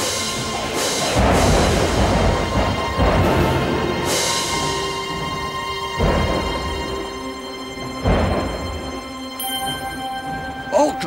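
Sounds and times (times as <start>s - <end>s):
thunder rumbling: 0.0s - 10.7s
dramatic soundtrack music: 0.0s - 11.0s.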